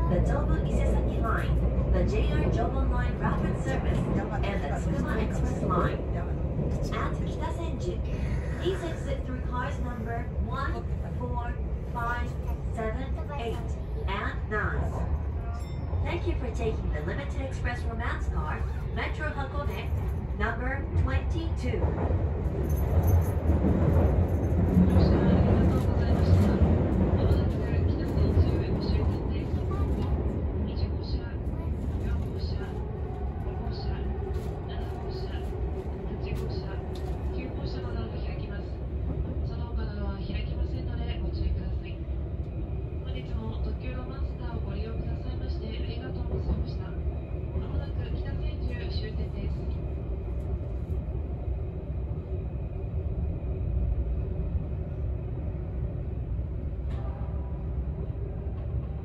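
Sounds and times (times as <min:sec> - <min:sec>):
train cabin rumble: 0:00.0 - 0:59.0.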